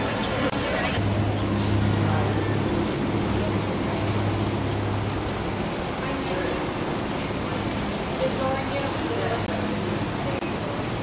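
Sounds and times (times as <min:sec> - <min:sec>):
street traffic noise: 0:00.0 - 0:11.0
vehicle engine humming: 0:00.0 - 0:11.0.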